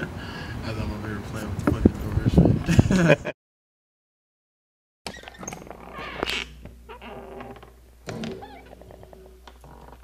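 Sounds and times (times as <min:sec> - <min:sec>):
door hinge squeak: 0:05.1 - 0:10.0.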